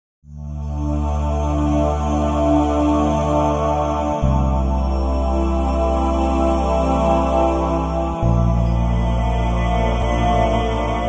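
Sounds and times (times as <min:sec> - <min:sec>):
ambient chords: 0:00.3 - 0:11.0
low steady drone: 0:00.3 - 0:11.0.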